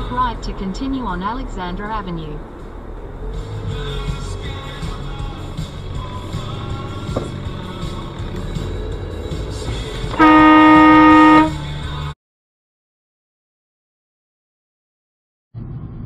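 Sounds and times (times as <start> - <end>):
car cabin and road rumble: 0.0 - 12.1, 15.6 - 16.0
car horn blast: 10.1 - 11.7.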